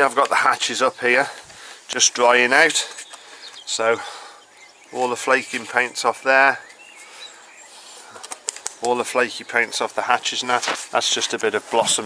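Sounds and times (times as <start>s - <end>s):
faint birds chirping: 0.0s - 12.0s
man's voice: 5.0s - 6.6s, 8.8s - 12.0s.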